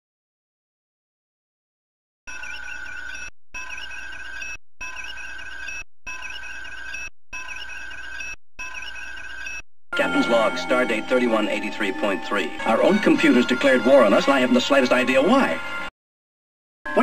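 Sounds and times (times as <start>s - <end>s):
warbling electronic computer beeps: 2.3s - 11.6s.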